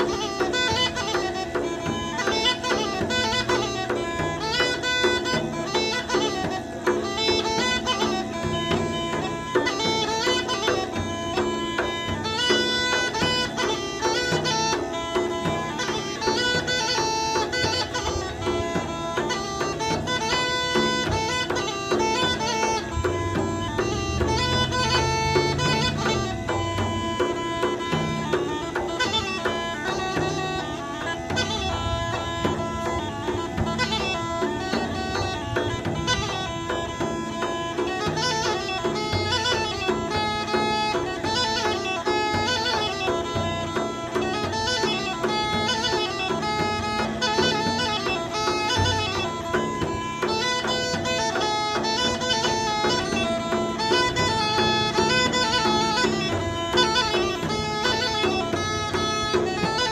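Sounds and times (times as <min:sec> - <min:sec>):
bagpipe drone: 0:00.0 - 0:59.9
bagpipe folk melody: 0:00.0 - 0:59.9.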